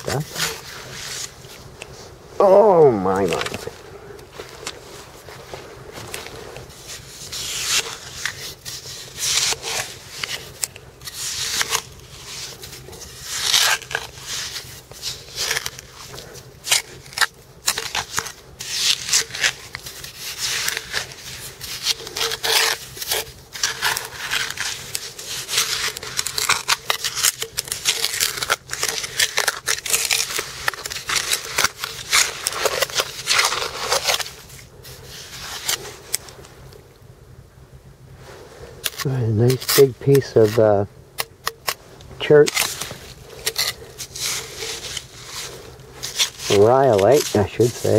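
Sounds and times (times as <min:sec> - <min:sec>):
trowel scraping sand: 0:06.7 - 0:36.3, 0:38.8 - 0:40.8, 0:41.4 - 0:47.9.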